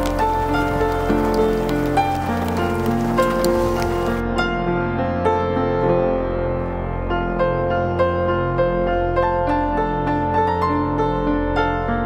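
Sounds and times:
rain falling on shallow water: 0.0s - 4.2s
slow background music: 0.0s - 9.3s.

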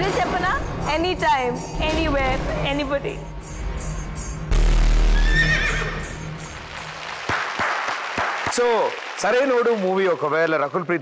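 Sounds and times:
action film music: 0.0s - 8.8s
deep bass boom: 4.5s - 5.3s
horse whinnying: 5.2s - 6.2s
audience clapping: 6.2s - 11.0s.

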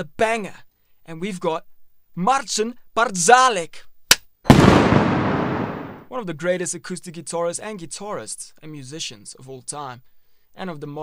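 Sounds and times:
loud explosive blast: 4.5s - 6.0s.

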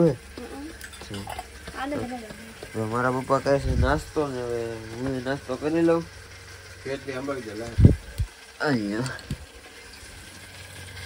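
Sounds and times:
cooking fire: 0.0s - 11.0s.

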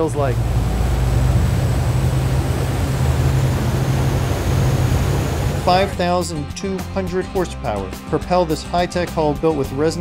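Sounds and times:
water rushing: 0.0s - 6.1s
boat diesel engines rumbling: 0.0s - 6.2s.

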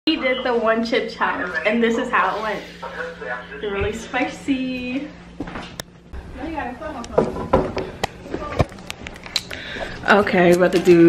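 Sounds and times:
steady low hum: 0.1s - 11.0s.

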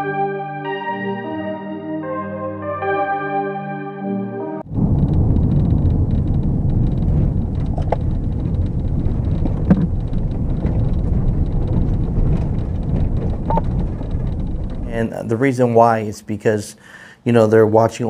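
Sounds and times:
car road and engine rumble: 4.7s - 15.2s.

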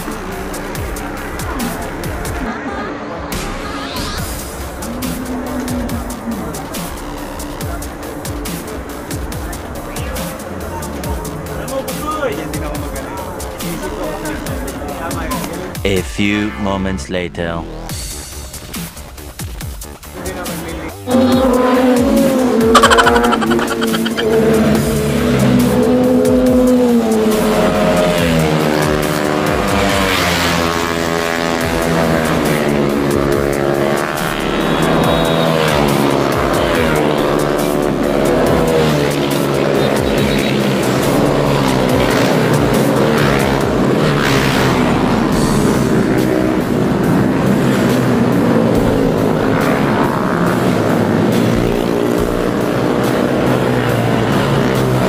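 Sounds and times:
motorcycle engines revving: 3.4s - 15.8s, 20.3s - 55.0s.

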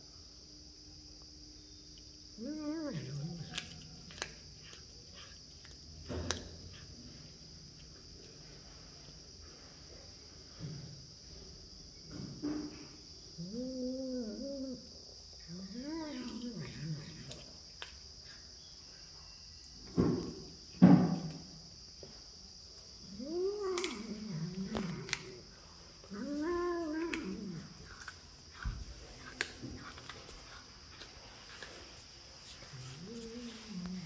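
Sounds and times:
cat meow-growls: 2.4s - 4.2s, 13.4s - 17.5s, 23.1s - 25.4s, 26.0s - 28.0s, 32.7s - 34.0s.

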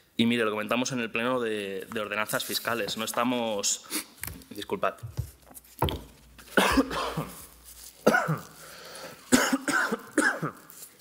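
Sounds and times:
man coughing: 6.5s - 7.4s, 8.0s - 8.6s, 9.3s - 10.6s.

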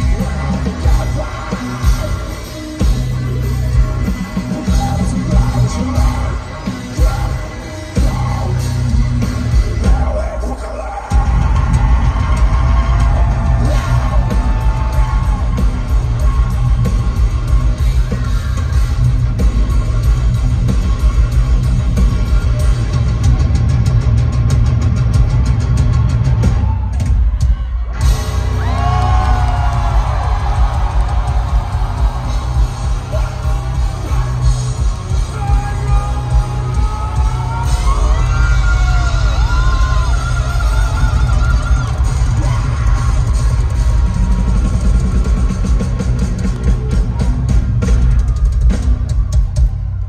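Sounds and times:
distorted electric guitars: 0.0s - 50.0s
drum kit beat: 0.0s - 50.0s
metal band playing live: 0.0s - 50.0s.

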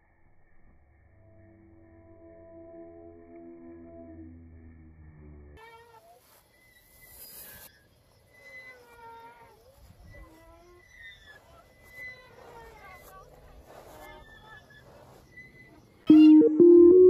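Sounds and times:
swing chain squeaking: 8.3s - 13.2s.

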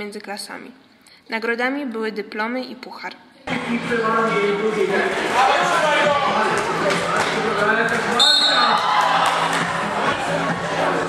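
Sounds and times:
people calling and shouting: 3.4s - 11.0s.

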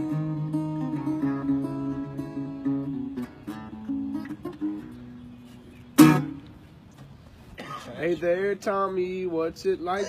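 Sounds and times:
acoustic guitar strum: 0.0s - 6.6s.

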